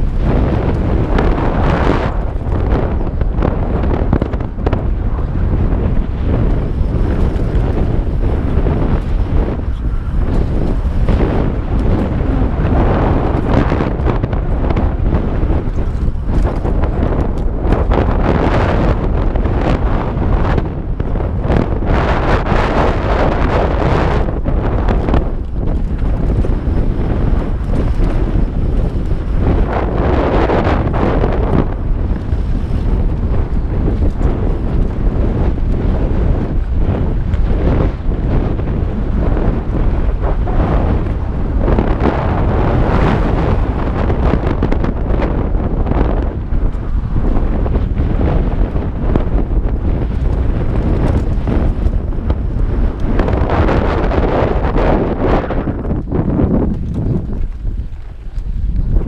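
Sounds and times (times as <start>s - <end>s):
tyres rolling on loose dirt: 0.0s - 19.2s, 23.7s - 45.6s, 47.9s - 59.0s
bike knocking and rattling: 0.0s - 59.0s
wind buffeting microphone: 0.0s - 59.0s.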